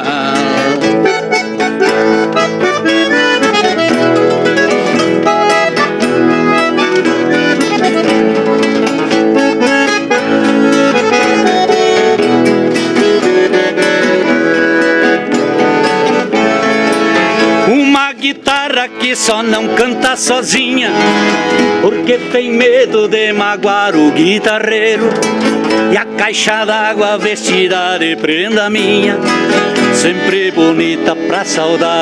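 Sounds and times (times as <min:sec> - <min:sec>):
bandoneon held reed notes: 0:00.0 - 0:27.7
acoustic guitars strumming: 0:00.0 - 0:32.0.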